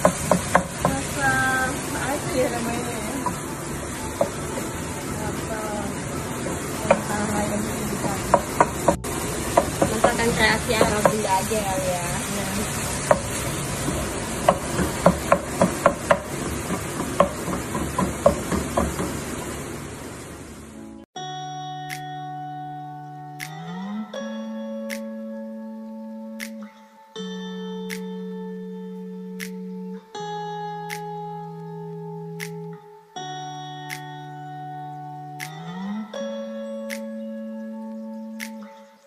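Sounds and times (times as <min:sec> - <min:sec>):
spatula knocking against pan: 0:00.0 - 0:01.0, 0:08.0 - 0:11.4, 0:13.0 - 0:19.2
food sizzling in frying pan: 0:00.0 - 0:20.7.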